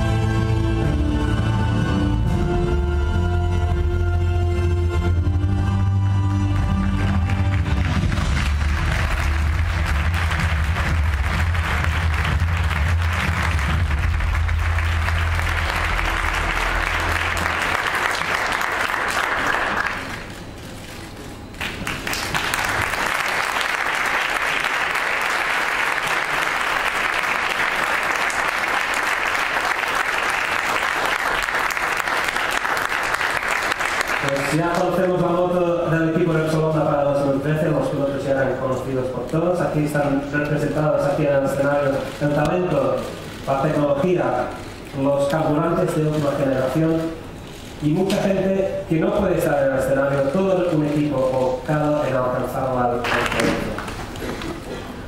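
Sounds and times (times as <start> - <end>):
audience applauding: 7.0 - 20.5, 21.6 - 35.2, 53.0 - 55.0.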